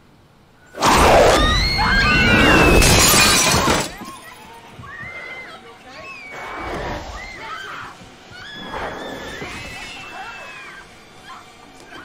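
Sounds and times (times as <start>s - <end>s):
shrill cries: 0.8s - 11.6s
glass shattering crash: 2.3s - 4.4s.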